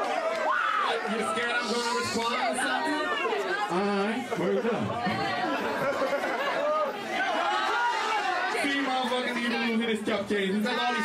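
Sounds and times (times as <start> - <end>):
voices chattering: 0.8 - 11.0.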